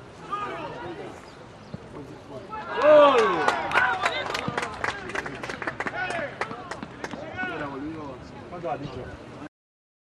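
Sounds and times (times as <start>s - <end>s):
young people shouting and cheering: 2.5s - 4.8s.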